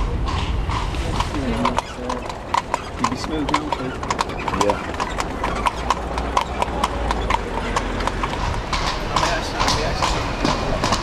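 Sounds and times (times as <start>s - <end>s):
horse hooves clip-clopping on pavement: 0.0s - 11.0s.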